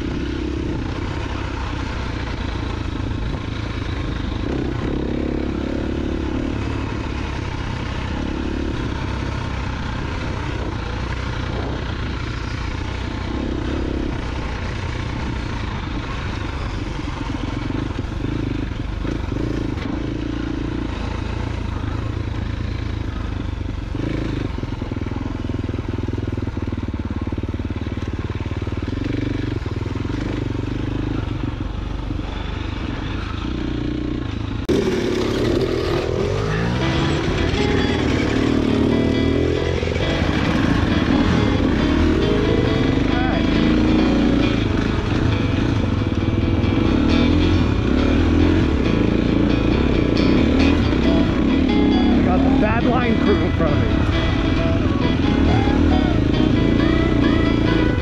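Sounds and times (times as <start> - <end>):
dirt bike engine revving: 0.0 - 26.8, 27.8 - 58.0.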